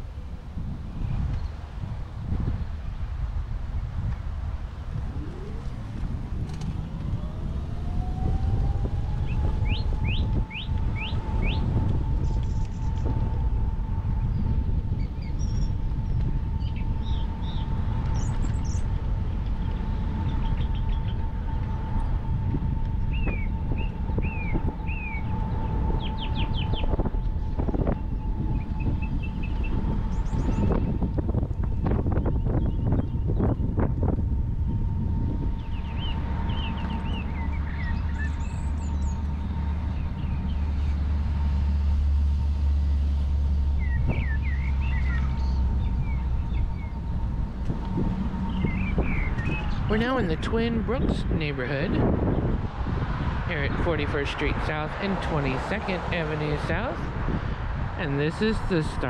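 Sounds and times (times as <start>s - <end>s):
scooter motor whine: 0.0s - 53.9s
low rumble: 0.0s - 59.0s
birds chirping: 3.7s - 52.6s.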